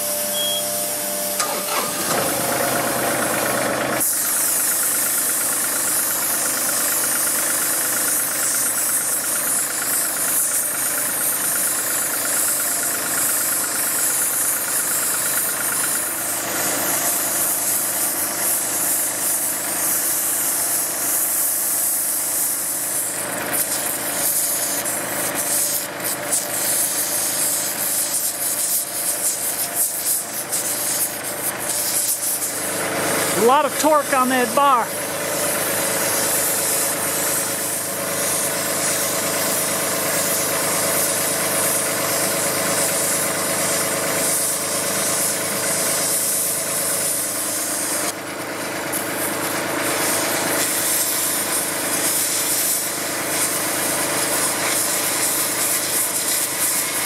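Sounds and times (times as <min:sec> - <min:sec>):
tractor diesel engine running: 0:00.0 - 0:20.4, 0:28.9 - 0:55.7
hiss of gas torch: 0:00.0 - 0:33.4, 0:34.9 - 0:57.0.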